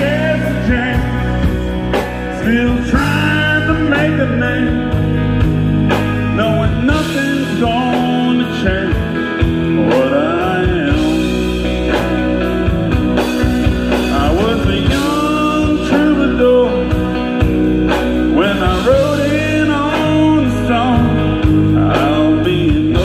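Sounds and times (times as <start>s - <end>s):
country band playing: 0.0s - 23.0s
electric guitar lead: 0.0s - 23.0s.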